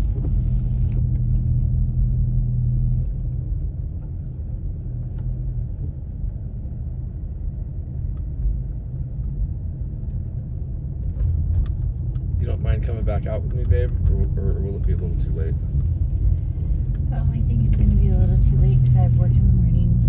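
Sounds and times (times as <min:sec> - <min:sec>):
car engine and tyre rumble: 0:00.0 - 0:20.0
low hum: 0:00.0 - 0:20.0.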